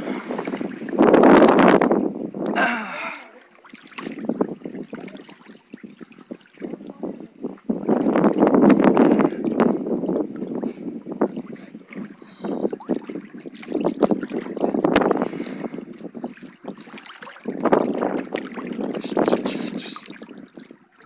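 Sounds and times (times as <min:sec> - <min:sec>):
pool water splashing: 0:00.0 - 0:21.0.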